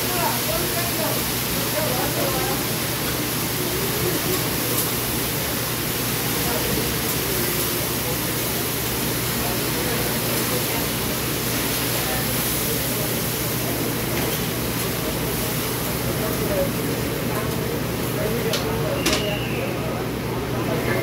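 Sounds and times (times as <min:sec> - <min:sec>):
noodles sizzling on griddle: 0:00.0 - 0:21.0.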